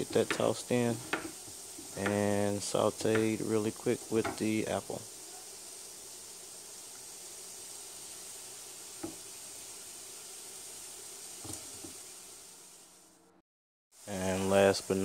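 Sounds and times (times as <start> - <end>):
food sizzling in a frying pan: 0.0 - 13.2, 14.0 - 15.0.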